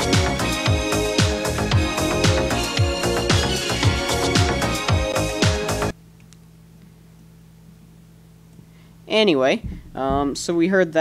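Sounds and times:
low electrical hum: 0:05.9 - 0:11.0.

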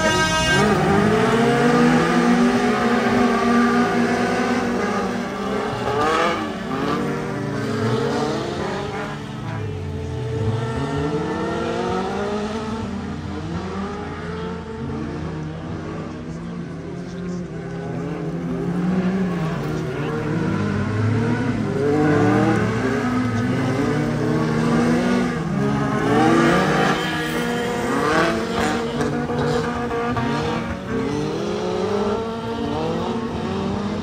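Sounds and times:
race car engines revving: 0:00.0 - 0:34.0.

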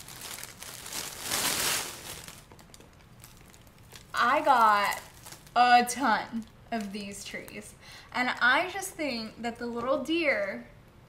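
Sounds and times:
shopping bag rustling: 0:00.0 - 0:05.6.

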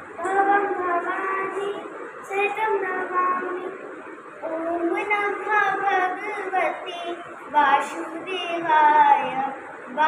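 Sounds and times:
girl chanting: 0:00.2 - 0:03.8, 0:04.4 - 0:10.0.

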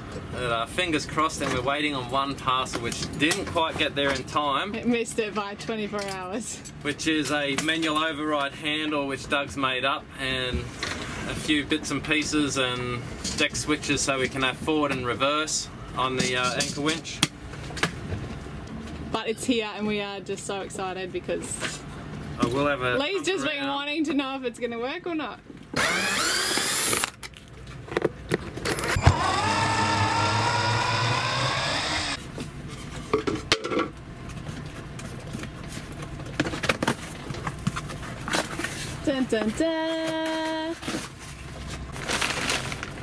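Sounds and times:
cordless drill motor whine: 0:25.8 - 0:27.1, 0:28.7 - 0:32.2.

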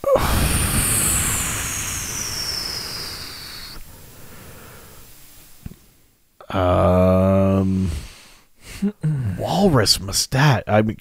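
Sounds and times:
person sighing into microphone: 0:00.0 - 0:01.0, 0:08.7 - 0:09.4.

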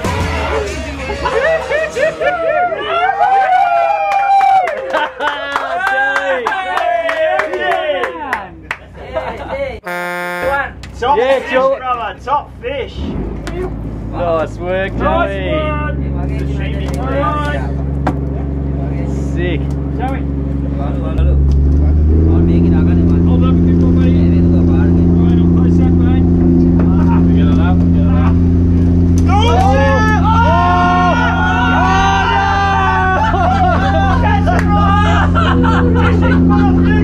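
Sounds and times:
boat engine droning: 0:09.8 - 0:10.8, 0:13.2 - 0:37.0
voices shouting: 0:29.3 - 0:37.0.

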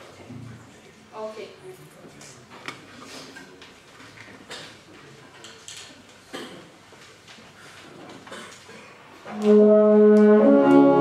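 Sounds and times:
soft clicks and rustles: 0:02.0 - 0:09.3.

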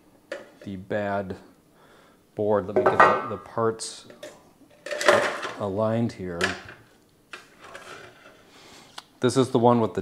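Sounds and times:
sheet metal scraping on table: 0:07.4 - 0:08.5.

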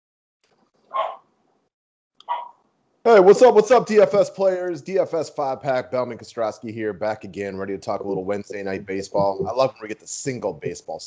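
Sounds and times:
dog barking: 0:00.9 - 0:01.2, 0:02.3 - 0:02.5.

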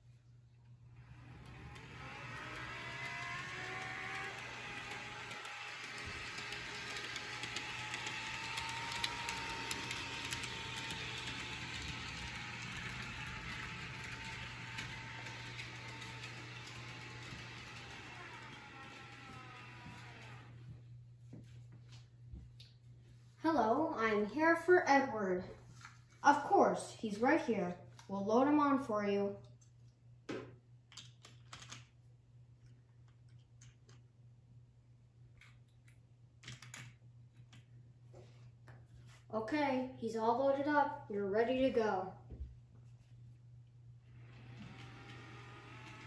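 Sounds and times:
model train motor whirring: 0:01.0 - 0:20.6, 0:44.2 - 0:46.0
wheels clicking on rails: 0:01.0 - 0:20.6, 0:44.2 - 0:46.0.

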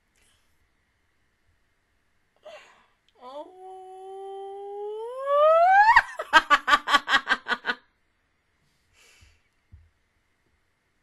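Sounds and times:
woman humming into a squeal: 0:03.2 - 0:06.2
woman giggling: 0:03.3 - 0:07.8.

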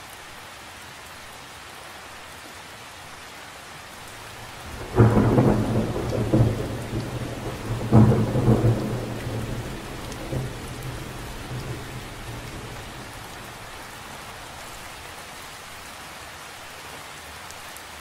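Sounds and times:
rain falling on water: 0:00.0 - 0:18.0
thunder rumbling: 0:04.3 - 0:15.0.

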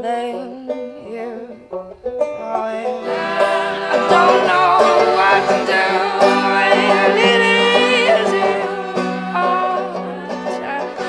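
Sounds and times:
banjo: 0:00.0 - 0:11.0
accordion: 0:01.7 - 0:11.0
folk-punk band playing: 0:02.2 - 0:11.0.

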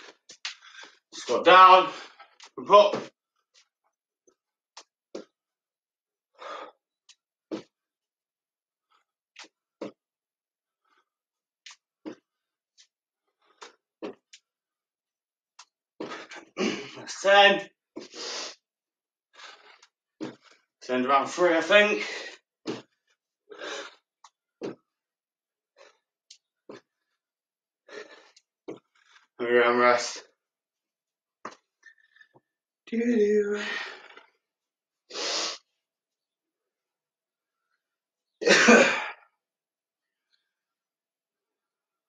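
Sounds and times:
man coughing: 0:38.4 - 0:39.2.

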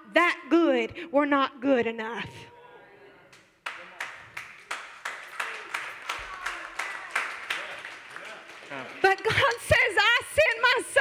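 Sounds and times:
hands clapping in rhythm: 0:03.3 - 0:11.0.

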